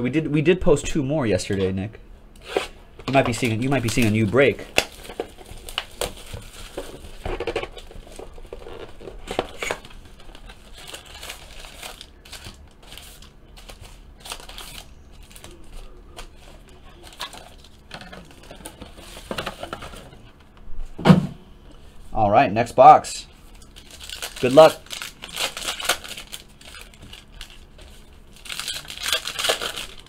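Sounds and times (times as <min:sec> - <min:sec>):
plastic shrink wrap crinkling: 0:02.5 - 0:20.2, 0:23.4 - 0:30.0.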